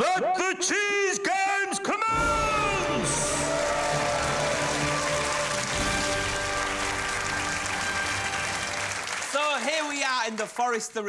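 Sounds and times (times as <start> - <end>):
studio audience applauding: 2.2 - 11.0.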